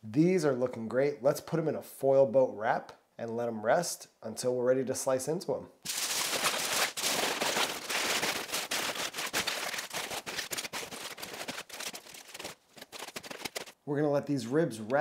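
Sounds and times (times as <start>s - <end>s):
aluminium foil crinkling: 5.9s - 13.8s.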